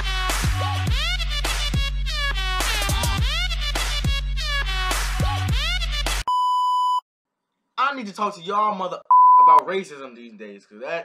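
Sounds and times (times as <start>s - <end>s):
loud test tone beep: 9.1s - 9.6s.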